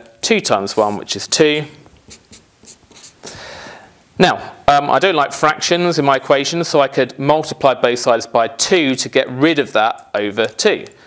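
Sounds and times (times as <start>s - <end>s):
marker pen writing on paper: 0.7s - 1.1s, 2.0s - 3.2s.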